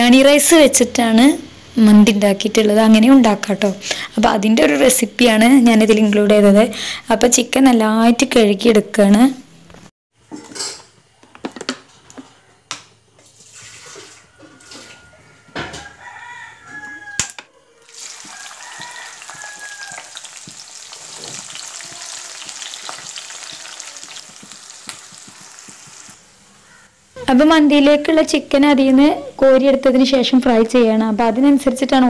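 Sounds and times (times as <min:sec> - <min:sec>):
onions sizzling in oil: 0:17.8 - 0:26.7.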